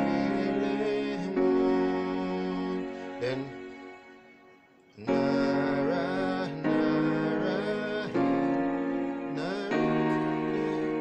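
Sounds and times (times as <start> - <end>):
person singing softly: 0.0 - 4.0, 5.0 - 11.0
keyboard piano chords: 0.0 - 11.0.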